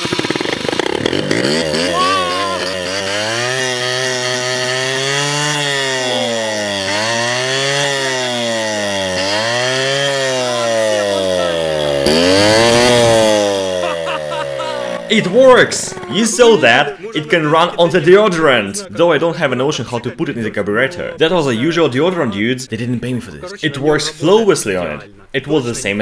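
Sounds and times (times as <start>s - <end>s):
scooter engine surging: 0.0s - 18.9s.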